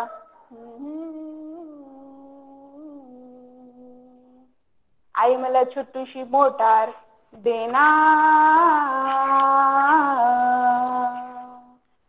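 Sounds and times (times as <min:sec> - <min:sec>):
woman humming low note: 0:00.0 - 0:04.5.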